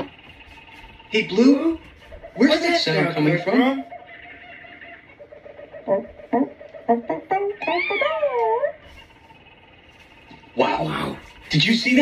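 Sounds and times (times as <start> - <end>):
voice making animal-like yelps: 3.8 - 8.8.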